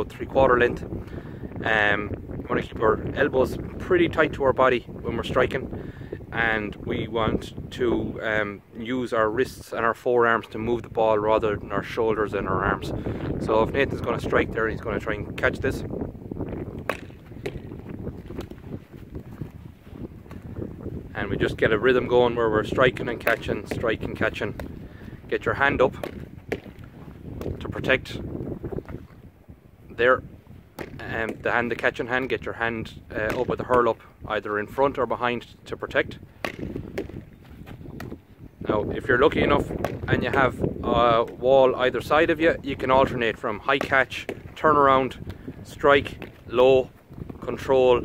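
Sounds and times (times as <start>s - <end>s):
wind rumble on microphone: 0.0s - 48.0s
hurley striking ball: 16.7s - 18.6s, 24.5s - 24.8s, 25.8s - 27.6s, 30.8s - 31.5s, 33.2s - 33.9s, 36.4s - 37.3s, 39.7s - 40.2s, 43.7s - 44.6s
ball hitting a wall: 16.8s - 18.6s, 25.9s - 26.8s, 30.8s - 31.4s, 36.4s - 37.2s.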